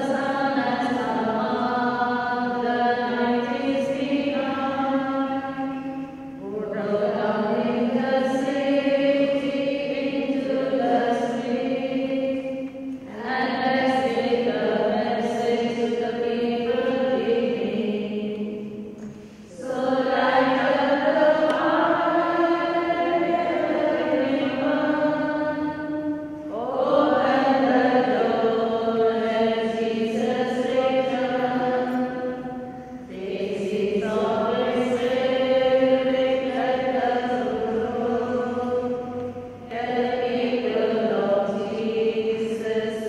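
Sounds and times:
voices singing a hymn: 0:00.0 - 0:43.0.

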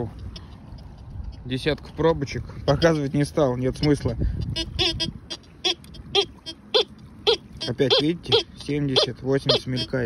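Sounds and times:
metal detector beeps: 0:04.5 - 0:10.0.

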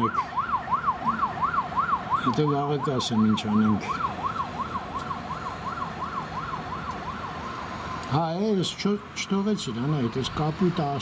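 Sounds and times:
siren on fast yelp: 0:00.0 - 0:07.5.

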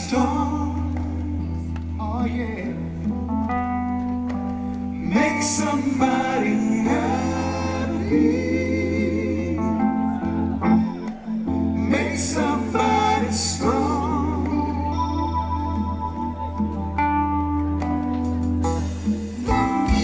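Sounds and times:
man singing: 0:00.0 - 0:03.1, 0:05.0 - 0:11.0, 0:11.7 - 0:15.8, 0:19.2 - 0:20.0
live band playing: 0:00.0 - 0:20.0.

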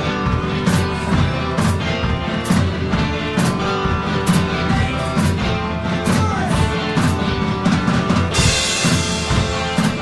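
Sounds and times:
drum kit playing: 0:00.0 - 0:10.0
rock music: 0:00.0 - 0:10.0.

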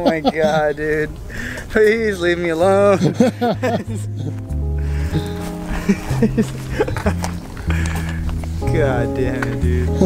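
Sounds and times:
man laughing: 0:00.0 - 0:01.1, 0:02.7 - 0:07.9
background music with bass line: 0:02.1 - 0:10.0.

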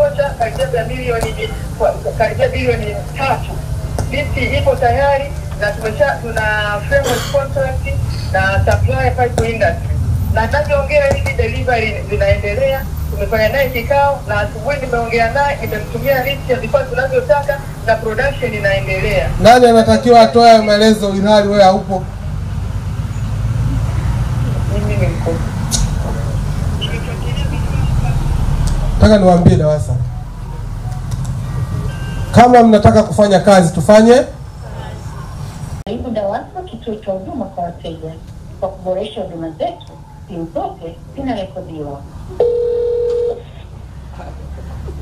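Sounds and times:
telephone ringback tone: 0:31.5 - 0:32.4, 0:42.4 - 0:43.4.

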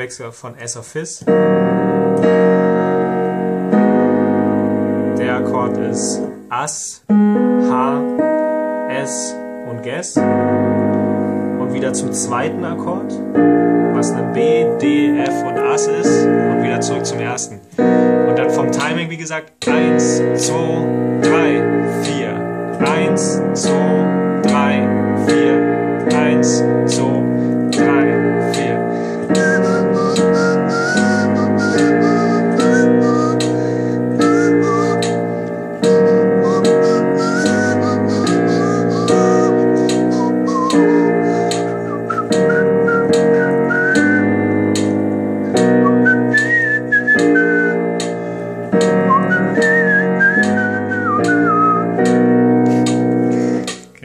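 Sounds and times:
digital piano chords: 0:00.0 - 0:54.0
whistled melody: 0:19.9 - 0:53.8.

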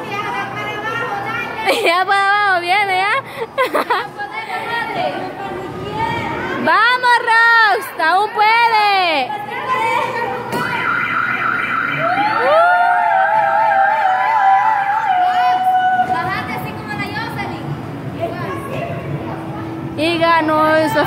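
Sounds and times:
voices cheering and shouting: 0:04.3 - 0:16.7.

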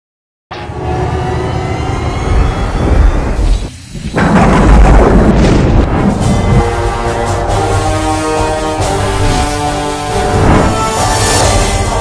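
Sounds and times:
trailer music deep rumble: 0:00.5 - 0:12.0
heavy boom hit: 0:02.2 - 0:08.1.

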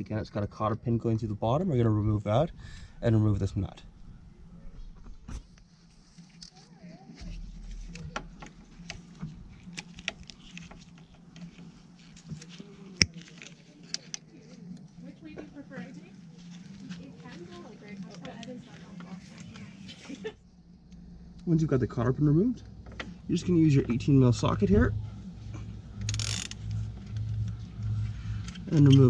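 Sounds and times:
steady low hum: 0:00.0 - 0:29.0.

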